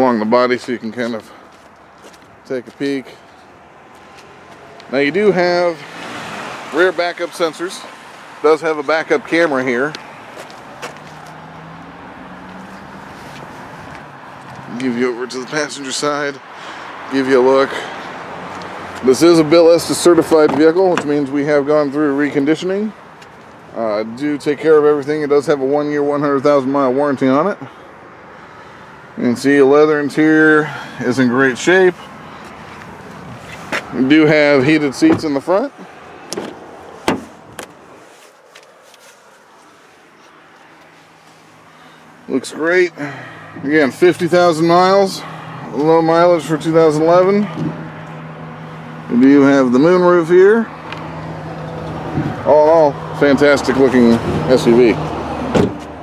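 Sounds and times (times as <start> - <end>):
vehicle hum: 0.0 - 56.0
car door unlatching and opening: 36.2 - 37.8, 55.4 - 55.9.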